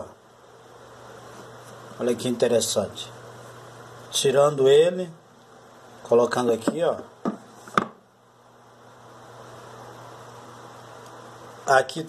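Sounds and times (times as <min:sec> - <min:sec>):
faint hiss with low hum: 0:00.0 - 0:12.0.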